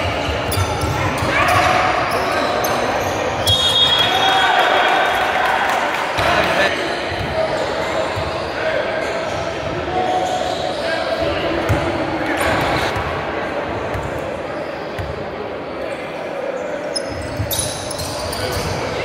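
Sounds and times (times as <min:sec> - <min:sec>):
sneakers squeaking on court: 0:00.0 - 0:04.1, 0:16.9 - 0:19.0
echoing murmur of voices: 0:00.0 - 0:19.0.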